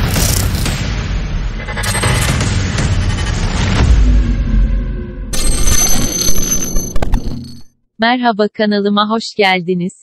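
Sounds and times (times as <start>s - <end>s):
bright ringing sting: 5.4s - 7.7s.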